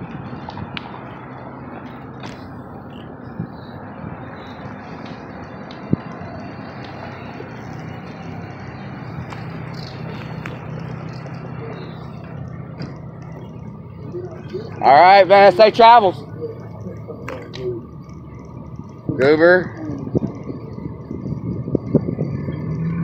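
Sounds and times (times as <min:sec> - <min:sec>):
road traffic engine hum: 0:00.0 - 0:23.0.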